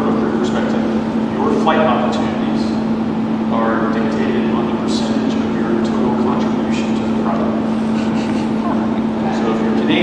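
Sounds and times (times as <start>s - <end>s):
man talking: 0.0s - 2.9s, 3.5s - 7.8s, 8.5s - 10.0s.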